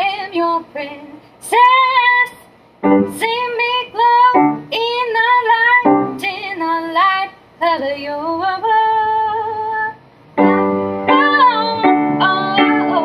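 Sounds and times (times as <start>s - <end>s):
woman singing slow melody: 3.1s - 13.0s
grand piano accompaniment: 10.4s - 13.0s.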